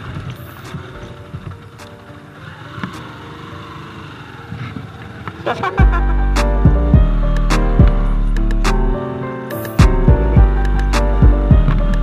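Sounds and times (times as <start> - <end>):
motorcycle engine at low revs: 0.0 - 8.3.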